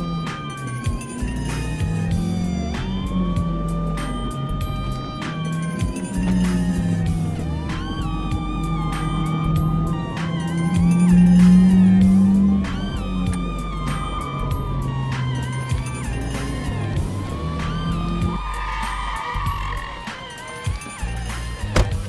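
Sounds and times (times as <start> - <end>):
music with bass line: 0.0 - 22.0
police siren wailing: 0.0 - 22.0.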